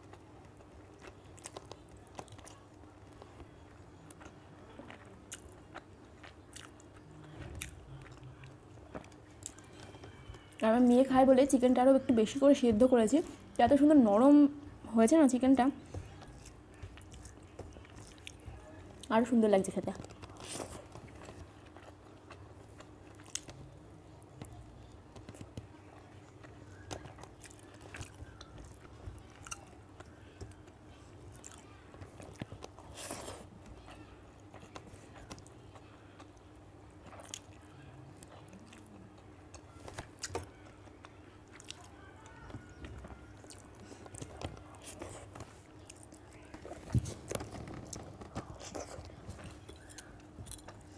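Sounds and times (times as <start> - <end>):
person chewing food: 0.0 - 10.6, 15.8 - 19.2, 20.0 - 50.9.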